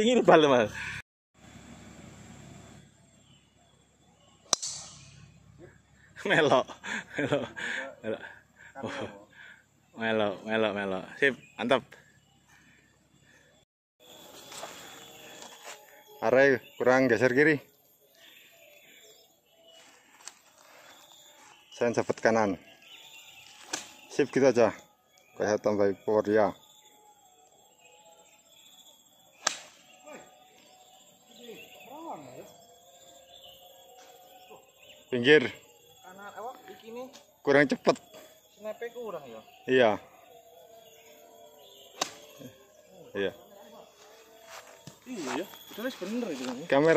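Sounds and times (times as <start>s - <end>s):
faint high steady tone: 2.4s - 46.9s
golf club striking ball: 4.5s - 5.4s.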